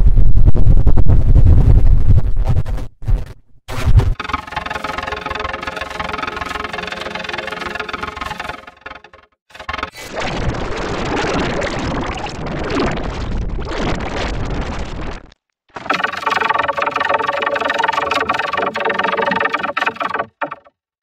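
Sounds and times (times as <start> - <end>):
distorted buzzy held chord: 4.2 - 10.0, 15.9 - 20.6.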